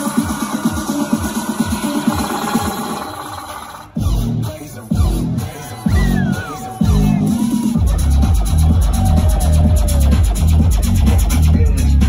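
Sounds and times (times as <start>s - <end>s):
electronic dance music: 0.0s - 12.0s
steady kick drum: 4.0s - 12.0s.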